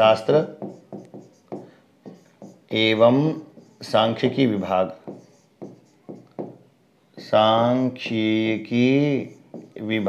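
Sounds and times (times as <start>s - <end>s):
man talking: 2.7s - 5.0s, 7.2s - 10.0s.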